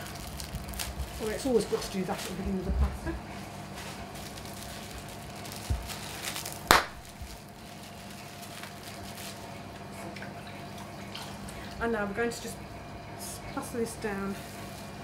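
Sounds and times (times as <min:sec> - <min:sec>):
steady hum: 0:00.0 - 0:15.0.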